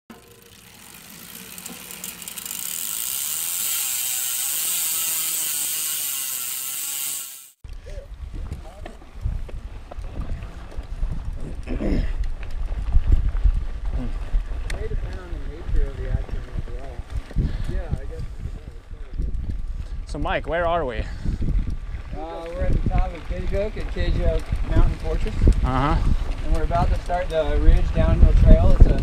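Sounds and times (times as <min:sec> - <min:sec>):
bike rattling and clicking: 0:00.1 - 0:29.0
bike tyre noise: 0:00.1 - 0:29.0
wind rumble on camera: 0:07.7 - 0:29.0
riders' voices: 0:07.8 - 0:12.5, 0:13.8 - 0:29.0.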